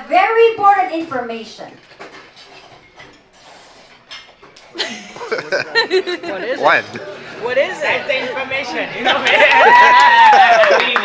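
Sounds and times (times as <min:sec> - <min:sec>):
tableware clinking: 0:01.8 - 0:05.6.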